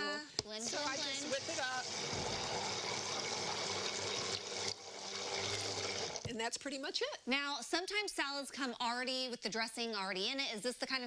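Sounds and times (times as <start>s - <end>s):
immersion blender whirring: 0.6s - 6.3s.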